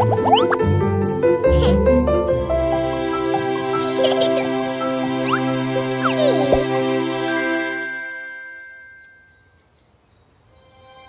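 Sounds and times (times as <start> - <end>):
soft music: 0.0 - 9.6, 10.5 - 11.0
bright chime ringing: 7.3 - 9.6.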